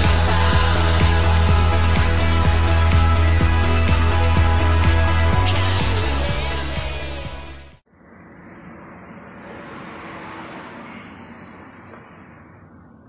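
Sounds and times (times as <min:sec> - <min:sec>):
background music: 0:00.0 - 0:07.8.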